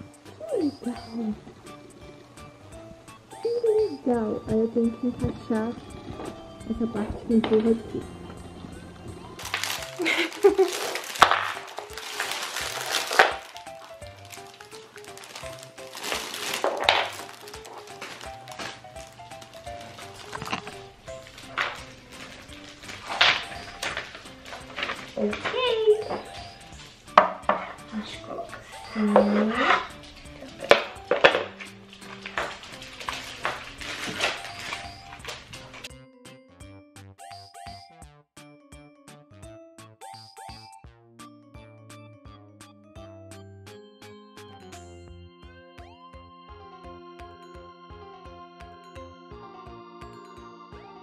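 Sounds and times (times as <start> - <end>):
light background music: 0.0 - 51.0
paper and plastic packaging rustling: 5.0 - 35.9
wooden parts knocking: 27.1 - 27.9, 29.1 - 35.6.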